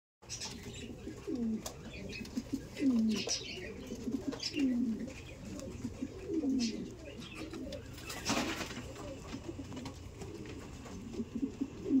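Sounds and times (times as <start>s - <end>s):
pigeons cooing: 0.2s - 12.0s.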